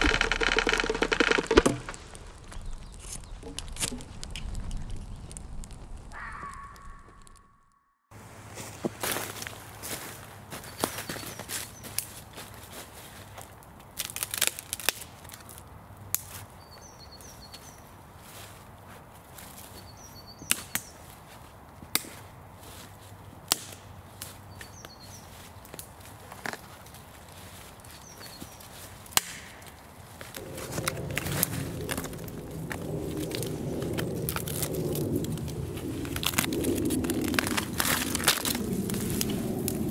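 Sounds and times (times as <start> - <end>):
dry wood cracking: 0.0 - 7.4, 8.9 - 39.9
footsteps in dry leaves: 8.1 - 39.9
small bird chirping: 24.5 - 25.4.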